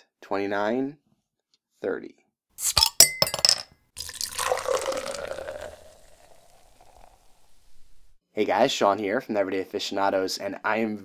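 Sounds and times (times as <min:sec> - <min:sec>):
glass clink: 0:02.8 - 0:06.3
beer pouring into a glass: 0:04.0 - 0:08.1.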